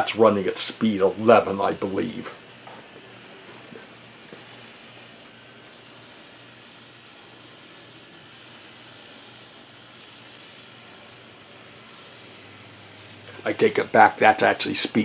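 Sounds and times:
model streetcars running on track: 5.6 - 15.0.

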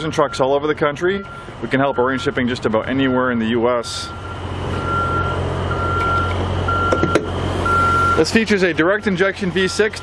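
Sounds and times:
electronic warning beeps: 1.1 - 3.4, 4.0 - 10.0.

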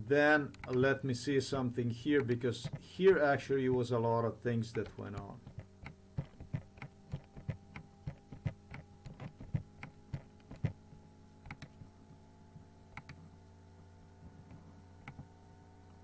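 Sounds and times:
steady low hum: 0.0 - 16.0
computer mouse clicking: 2.2 - 2.8, 4.7 - 10.8, 11.4 - 11.8, 12.9 - 13.2, 14.5 - 15.3.

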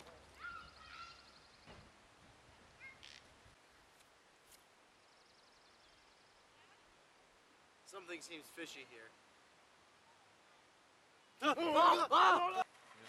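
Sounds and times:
bird chirps and calls: 0.4 - 1.8.

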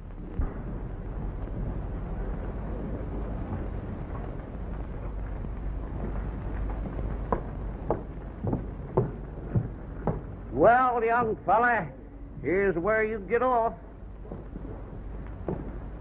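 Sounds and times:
film soundtrack rumble and hiss: 0.0 - 16.0
hoofbeats on dirt: 5.8 - 11.8.

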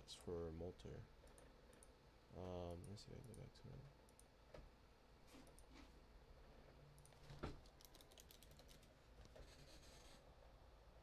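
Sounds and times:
faint keyboard typing: 1.2 - 2.0, 2.6 - 4.3, 6.9 - 10.2.

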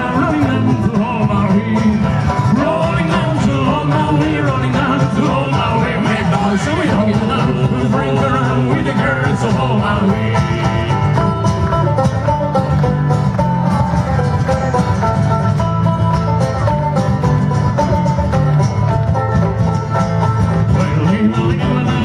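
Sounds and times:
frame drum steady beat: 0.0 - 13.2, 17.1 - 22.0
acoustic guitar: 0.0 - 22.0
banjo: 0.0 - 22.0.

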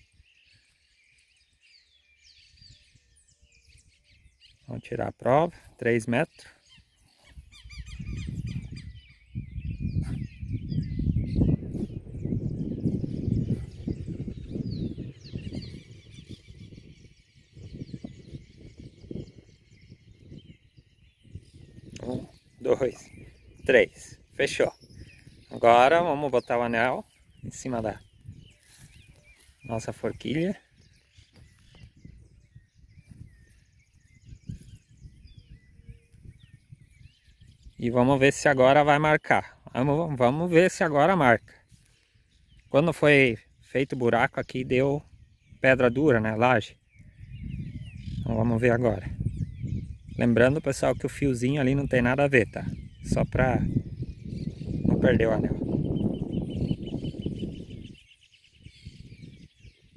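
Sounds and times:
birds chirping and calling: 0.0 - 59.9
wind buffeting microphone: 0.0 - 59.9.

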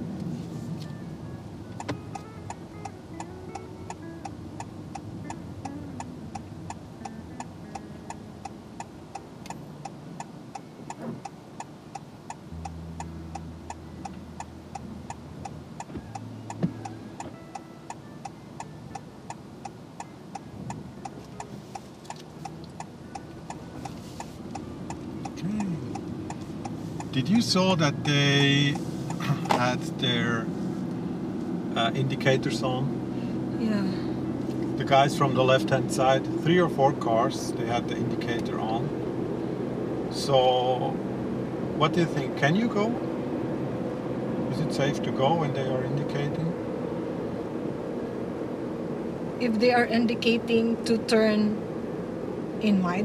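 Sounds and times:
car turn signal ticking: 0.2 - 32.7.

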